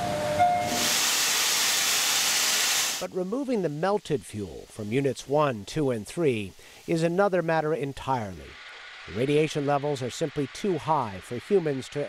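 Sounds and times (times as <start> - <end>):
loud steady hiss: 0.0 - 12.0.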